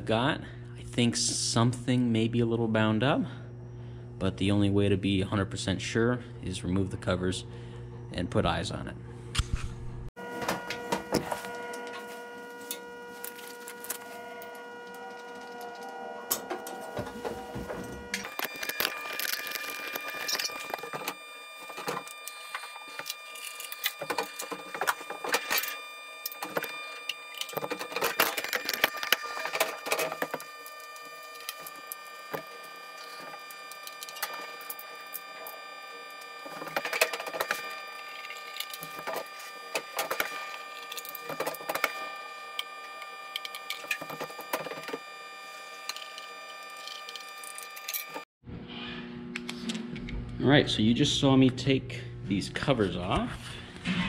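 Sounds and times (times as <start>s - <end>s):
steady hum of fixed tones: 10.0s - 53.9s.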